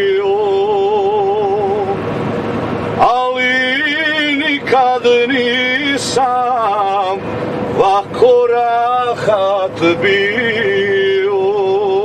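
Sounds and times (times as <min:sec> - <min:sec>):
man singing folk song: 0:00.0 - 0:02.0, 0:03.0 - 0:07.2, 0:07.8 - 0:12.0
car road noise: 0:00.0 - 0:12.0.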